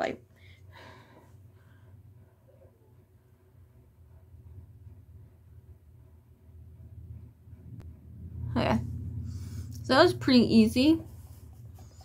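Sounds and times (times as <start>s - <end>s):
low hum: 0.3s - 12.0s.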